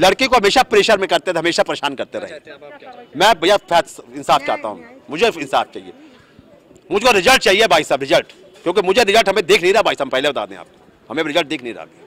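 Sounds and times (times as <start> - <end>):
man speaking: 0.0 - 6.1, 6.9 - 11.9.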